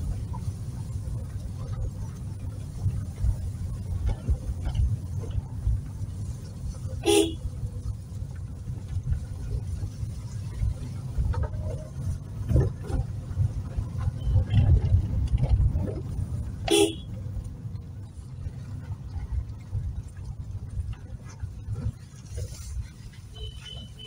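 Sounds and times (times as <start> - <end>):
car engine rumble: 0.0 - 24.0
car horn toots: 7.0 - 7.4, 16.6 - 17.1, 23.3 - 24.0.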